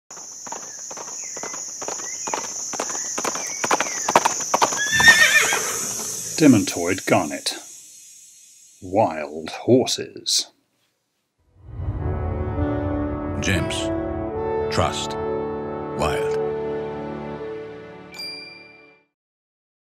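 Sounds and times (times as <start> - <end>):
hoofbeats of running horses: 0.1 - 6.2
steady high hiss: 3.3 - 10.7
horse neighing: 4.6 - 6.4
music: 11.5 - 19.2
high bell-like chime: 18.2 - 19.0.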